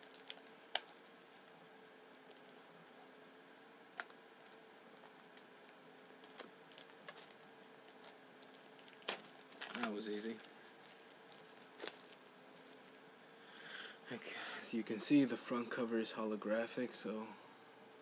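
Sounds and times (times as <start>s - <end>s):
plastic wrap crackling and tearing: 0.0s - 3.0s, 3.9s - 13.0s.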